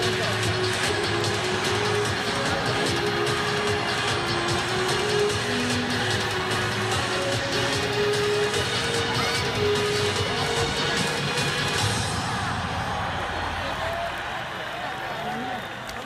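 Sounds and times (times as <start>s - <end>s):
music over public-address system: 0.0s - 13.8s
crowd noise: 0.0s - 16.0s.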